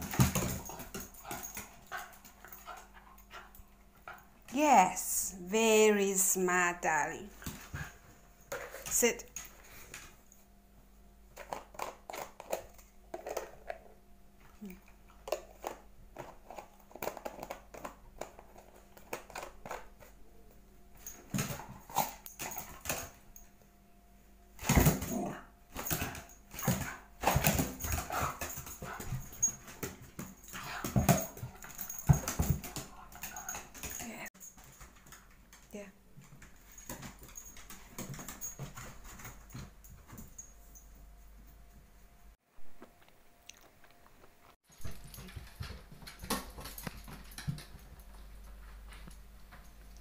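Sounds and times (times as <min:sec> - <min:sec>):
dog claws clicking on wooden floor: 0:15.2 - 0:20.1.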